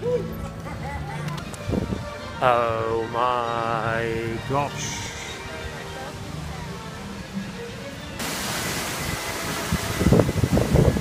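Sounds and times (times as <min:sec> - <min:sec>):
faint background music: 0:00.0 - 0:10.5
steady rushing noise: 0:08.2 - 0:11.0.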